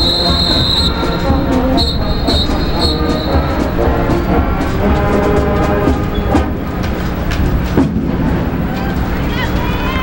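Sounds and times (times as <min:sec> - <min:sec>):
marching band playing: 0:00.0 - 0:09.4.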